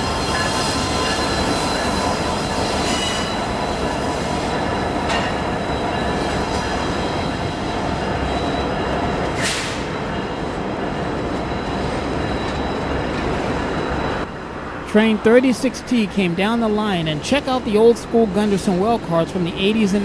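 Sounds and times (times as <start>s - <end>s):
high wheel squeal: 0.0s - 14.3s
train wheels rumbling on rail: 0.0s - 14.8s.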